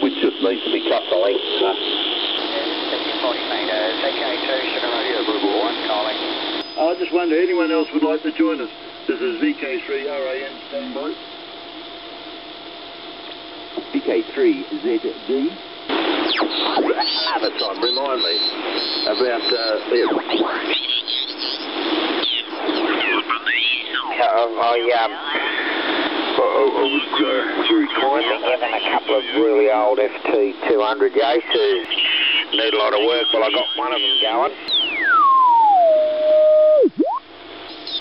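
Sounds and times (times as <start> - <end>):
radio band hiss: 0.0 - 11.2, 13.3 - 35.1, 37.5 - 38.0
radio voices sliding in pitch: 16.0 - 30.2, 31.1 - 38.0.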